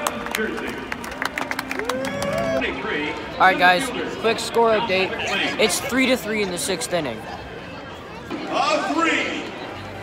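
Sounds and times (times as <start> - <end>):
close hand claps: 0.0 - 2.6
crowd applauding: 0.0 - 3.0.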